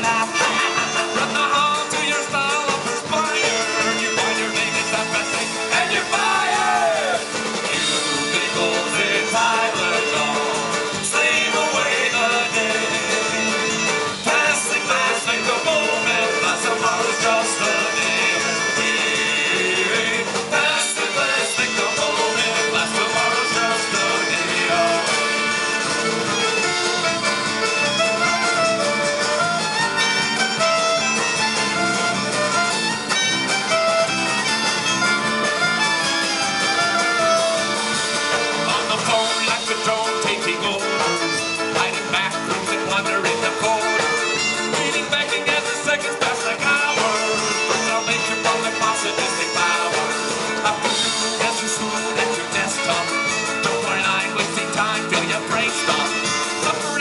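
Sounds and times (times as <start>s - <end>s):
acoustic guitar: 0.0s - 57.0s
drum kit: 0.0s - 57.0s
electric bass: 0.0s - 57.0s
fiddle: 0.0s - 57.0s.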